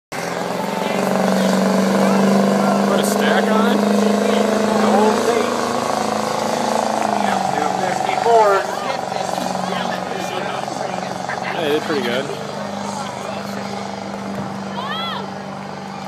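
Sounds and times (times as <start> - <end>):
diesel engine droning at high revs: 0.1 - 16.0
voices: 0.2 - 16.0.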